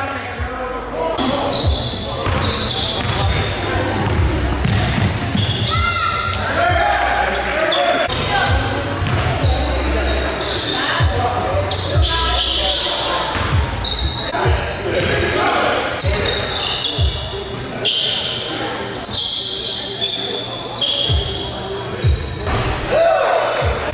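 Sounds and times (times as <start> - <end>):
voices in gym: 0.0 - 23.9.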